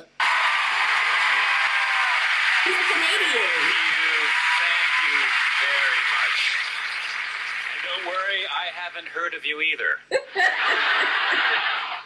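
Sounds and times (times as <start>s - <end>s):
audience applauding: 0.1s - 8.6s, 10.5s - 12.0s.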